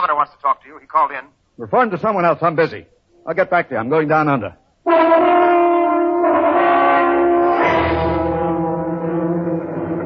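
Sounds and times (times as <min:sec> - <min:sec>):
droning chord of held tones: 0:07.2 - 0:10.0.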